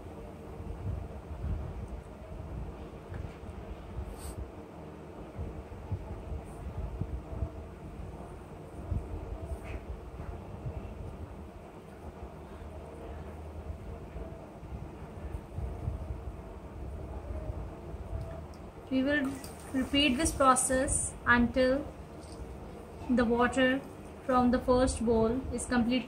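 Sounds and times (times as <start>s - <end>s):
low uneven rumble: 0.0s - 26.0s.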